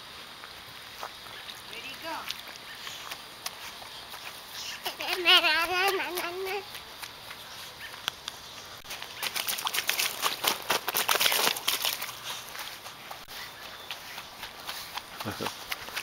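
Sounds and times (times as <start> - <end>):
child's footsteps on grass: 0.2 - 16.0
slaps on wet plastic slide: 9.2 - 12.1.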